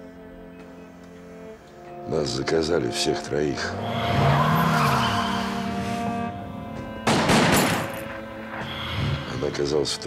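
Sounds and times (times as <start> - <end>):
music: 0.0 - 10.0
car engine revving: 3.5 - 7.1.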